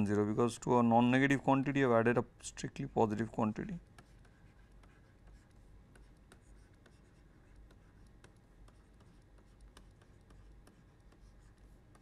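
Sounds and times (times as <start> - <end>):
faint low hum: 0.0 - 12.0
stylus tapping on tablet screen: 3.8 - 12.0.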